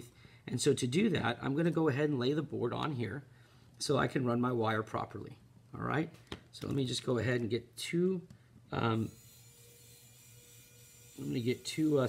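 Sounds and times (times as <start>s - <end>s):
faint electrical hum: 0.0s - 12.0s
thin steady whine: 8.7s - 12.0s.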